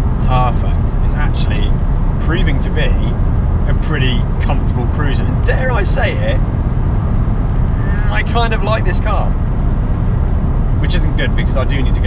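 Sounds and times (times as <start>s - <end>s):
car engine and road drone: 0.0s - 12.0s
man speaking: 0.2s - 6.5s, 7.8s - 9.4s, 10.8s - 12.0s.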